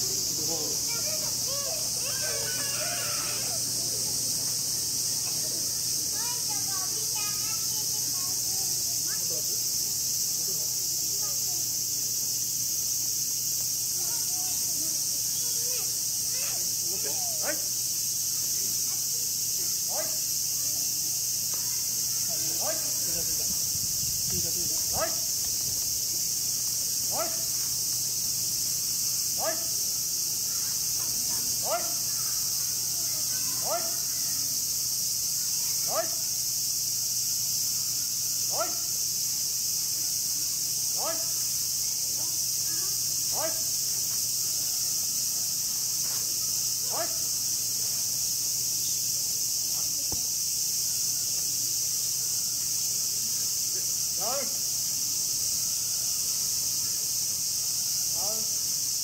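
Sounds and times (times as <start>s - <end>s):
cicadas chorus: 0.0s - 59.0s.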